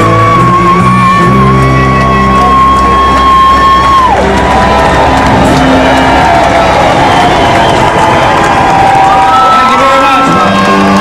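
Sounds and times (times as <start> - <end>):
country band playing: 0.0 - 11.0
crowd cheering and whooping: 0.0 - 11.0.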